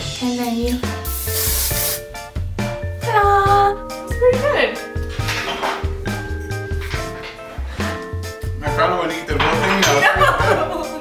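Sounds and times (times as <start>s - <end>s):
aerosol spray hiss: 1.0s - 2.1s.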